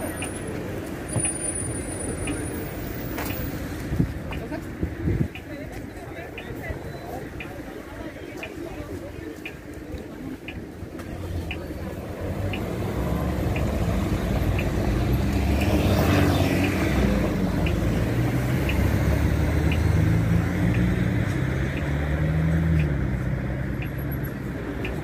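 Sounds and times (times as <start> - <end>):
car engines driving past: 10.9 - 25.0.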